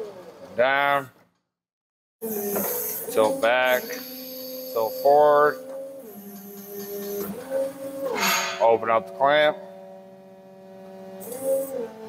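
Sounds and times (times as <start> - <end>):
forklift hydraulic pump whine: 2.2 - 12.0.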